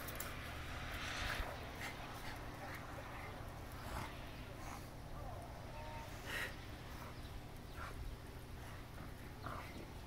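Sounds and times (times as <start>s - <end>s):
dogs growling and snarling: 7.7s - 10.0s.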